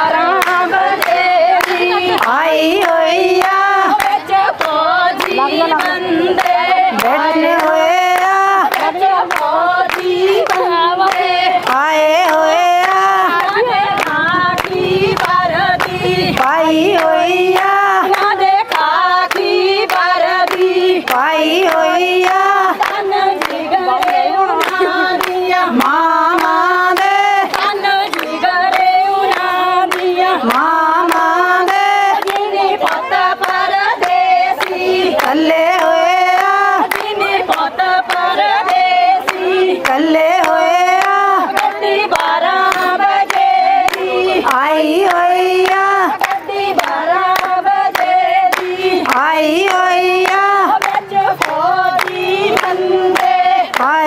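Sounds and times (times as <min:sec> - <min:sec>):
hand claps keeping time: 0:00.0 - 0:54.0
women singing together: 0:00.0 - 0:54.0.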